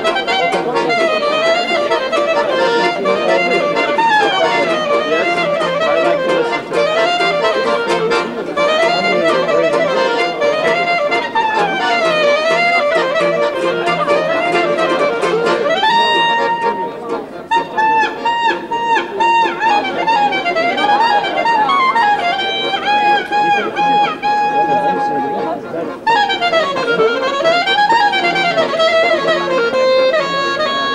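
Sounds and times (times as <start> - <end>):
accordion chords: 0.0 - 30.9
clarinet playing klezmer tune: 0.0 - 30.9.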